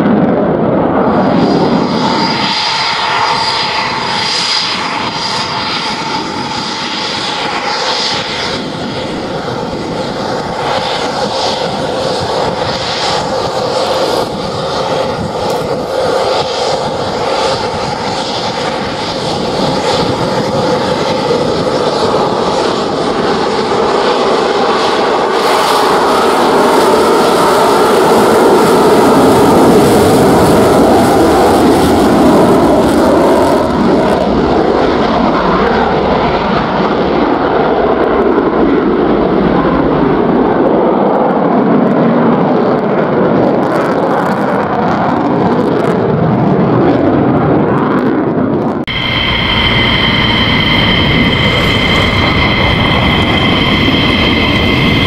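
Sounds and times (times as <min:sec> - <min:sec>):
jet engine roar with high whine: 0:00.0 - 0:55.0.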